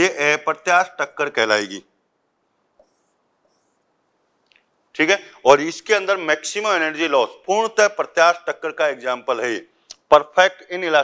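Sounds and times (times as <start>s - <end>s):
marker pen on whiteboard: 2.8s - 4.0s.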